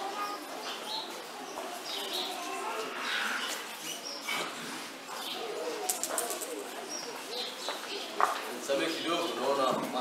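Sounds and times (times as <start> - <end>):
low voices: 0.0 - 10.0.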